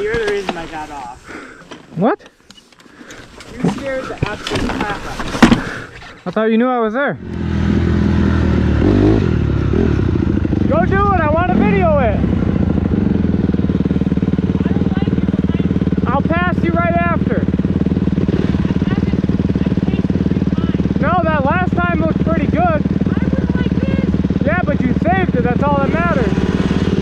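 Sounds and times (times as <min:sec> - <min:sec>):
dirt bike engine: 0:00.0 - 0:06.4, 0:07.2 - 0:27.0.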